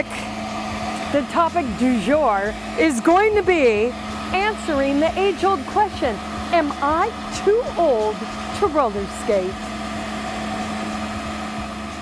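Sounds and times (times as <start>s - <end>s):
floor scrubber motor humming: 0.0s - 12.0s.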